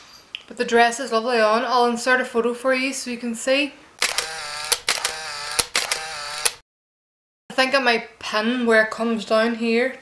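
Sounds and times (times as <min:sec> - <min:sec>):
camera shutter clicks: 0:04.0 - 0:06.6
motorised winding whir: 0:04.0 - 0:06.6.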